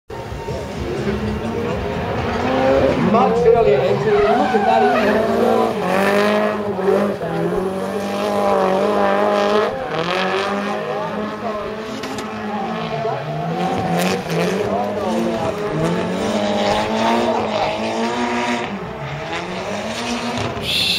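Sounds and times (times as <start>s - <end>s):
car engine at high revs: 0.1s - 20.9s
tyres squealing: 3.8s - 5.8s.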